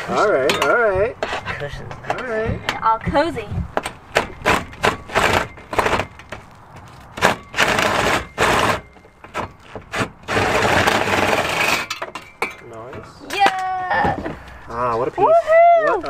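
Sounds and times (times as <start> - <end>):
impact driver hammering: 3.8 - 6.2.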